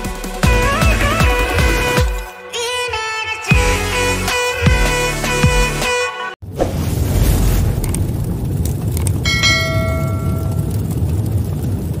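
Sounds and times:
steady low rumble: 6.7 - 12.0
bright bell ding: 9.3 - 10.6.

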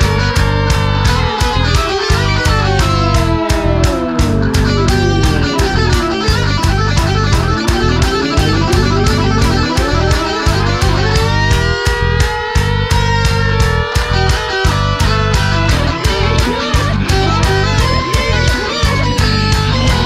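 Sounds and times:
electric guitar: 0.0 - 20.0
steady drum beat: 0.0 - 20.0.

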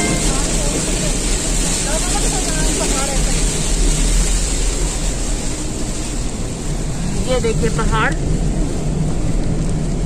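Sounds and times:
rain on car: 0.0 - 10.0
road and engine rumble: 0.0 - 10.0.

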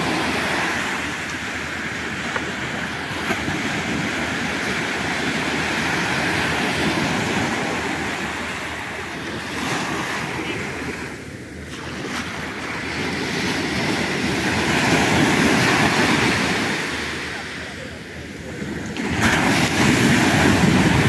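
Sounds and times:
surf washing onto beach: 0.0 - 21.0.

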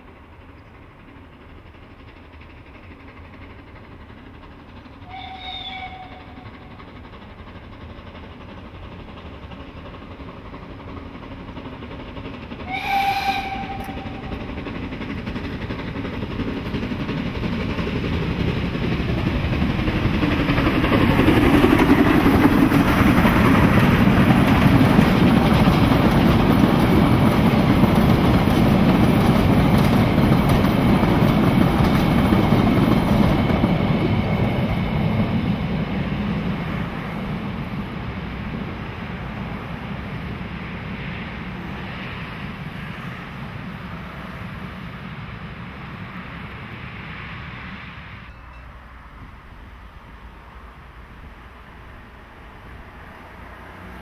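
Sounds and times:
train wheels rumbling on rails: 0.0 - 54.0
steam locomotive whistle: 5.0 - 6.6, 12.6 - 14.4.

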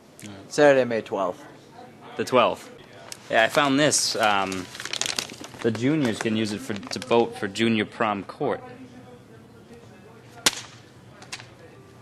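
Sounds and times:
crumpled paper snapping: 3.1 - 7.2, 10.4 - 11.6.

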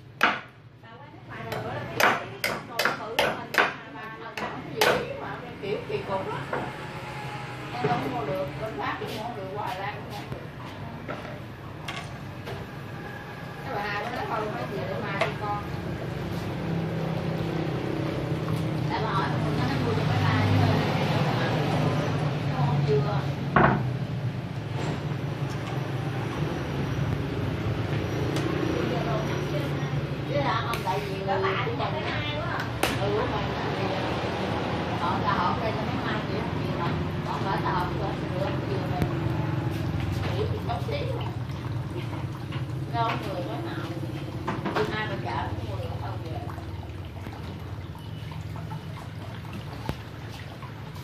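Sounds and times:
people talking: 0.8 - 6.8, 7.6 - 11.4, 13.6 - 15.9, 18.8 - 23.4, 28.2 - 42.2, 42.8 - 46.8
water pouring into plastic basin: 34.0 - 51.0.

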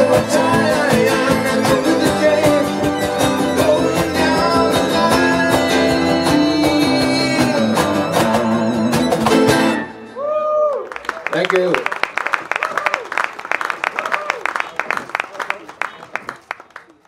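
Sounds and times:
man singing: 0.0 - 9.7
cajon beat: 0.0 - 9.8
fiddle: 0.0 - 10.1
electric guitar: 0.0 - 10.2
acoustic guitar: 0.0 - 10.5
small live band playing: 0.0 - 13.0.

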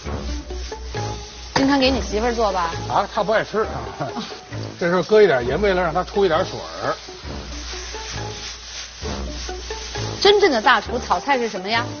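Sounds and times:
faint background music: 0.0 - 12.0
vegetables sizzling in a wok: 0.0 - 12.0
wooden spatula stirring: 6.2 - 12.0.

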